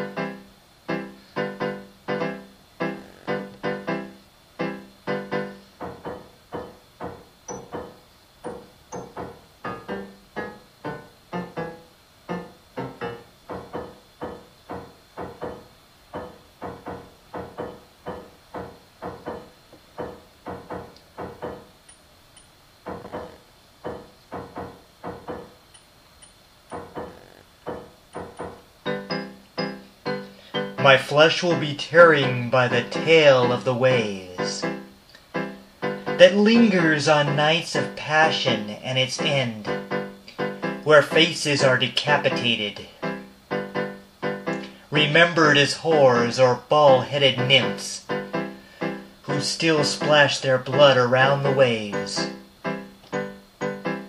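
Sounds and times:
piano-like keyboard notes: 0.0s - 21.8s, 22.9s - 25.7s, 26.7s - 54.0s.

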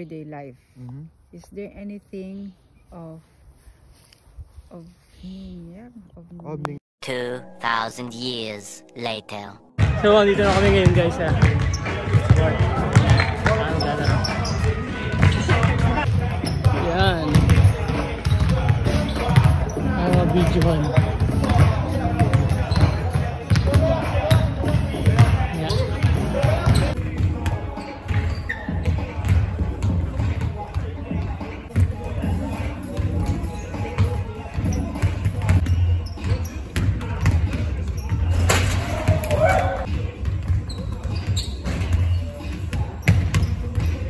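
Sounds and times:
background music: 7.0s - 12.9s, 14.4s - 44.0s
players' voices: 7.0s - 44.0s
basketballs bouncing on hall floor: 10.6s - 32.3s, 32.9s - 44.0s
people shouting: 38.8s - 39.9s.

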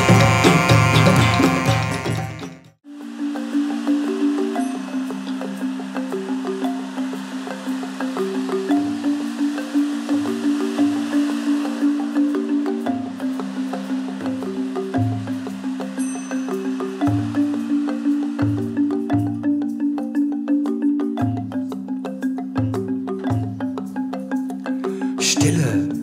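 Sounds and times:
band playing instrumental: 0.0s - 2.7s.

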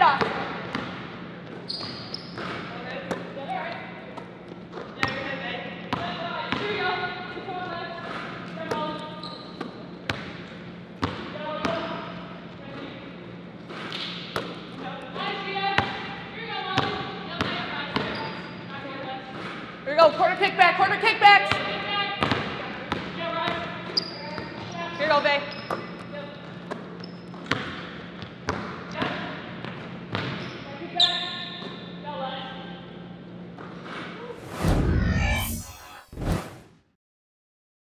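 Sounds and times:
low hum: 34.4s - 36.6s.

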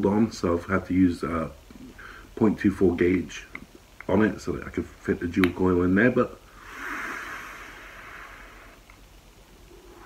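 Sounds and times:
airy hiss of vape draw: 6.5s - 9.0s.

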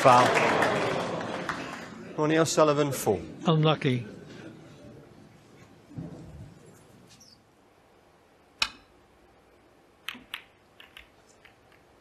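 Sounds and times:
snooker balls clicking together: 10.0s - 12.0s.

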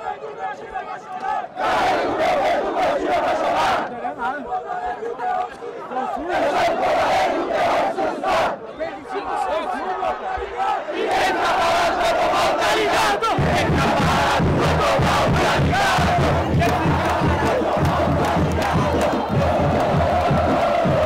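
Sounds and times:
crowd chanting: 0.0s - 21.0s
low regular drum beat: 13.3s - 21.0s.

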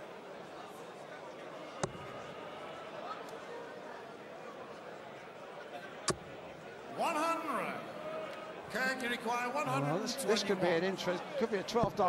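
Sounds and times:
dart striking dartboard: 1.8s - 2.1s.

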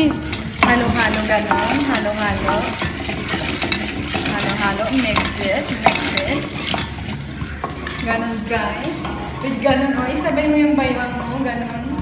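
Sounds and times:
spoon scraping kernels in pot: 0.0s - 9.3s
oil sizzling in a pot: 0.0s - 10.3s.

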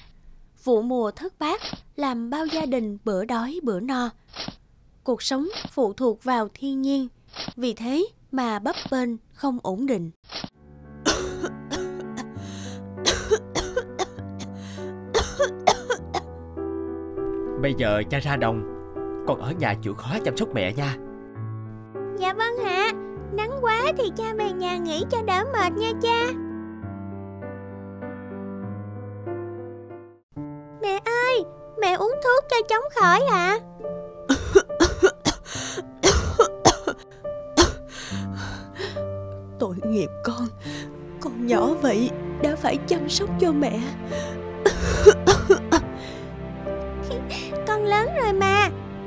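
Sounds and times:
soft background music: 10.6s - 49.0s
person coughing: 11.1s - 12.3s, 13.0s - 14.2s, 15.2s - 16.3s, 34.3s - 37.0s, 37.6s - 37.8s, 44.6s - 45.8s.

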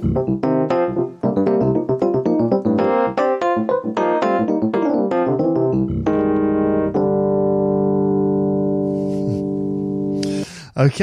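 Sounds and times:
electric piano chord: 0.0s - 10.4s.

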